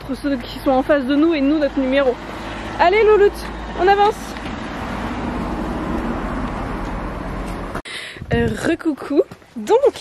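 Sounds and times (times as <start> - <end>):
road traffic passing: 0.0 - 10.0.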